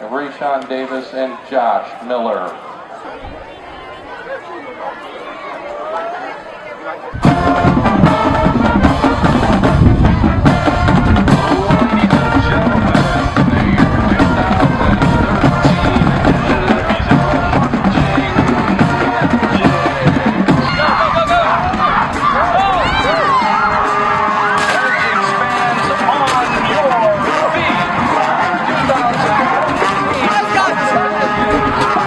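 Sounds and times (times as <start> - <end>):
crowd shouting and cheering: 0.0 - 32.0
marching band playing: 7.1 - 32.0.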